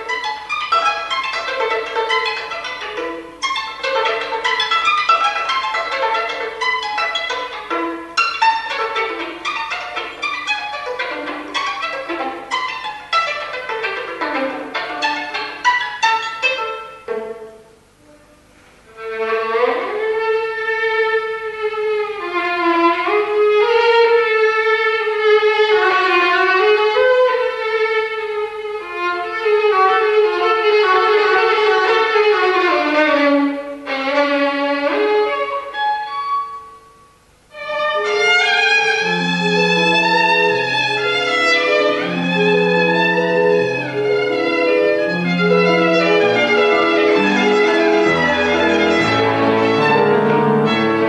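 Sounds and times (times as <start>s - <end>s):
solo violin playing: 0.0s - 51.0s.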